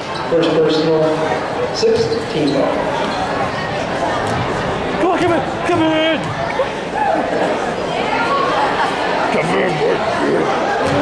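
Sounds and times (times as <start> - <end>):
crowd chatter echoing: 0.0 - 11.0.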